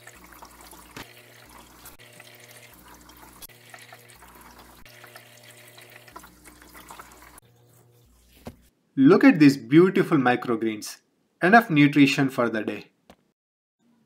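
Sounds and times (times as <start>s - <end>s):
faint trickle of water: 0.0s - 7.4s.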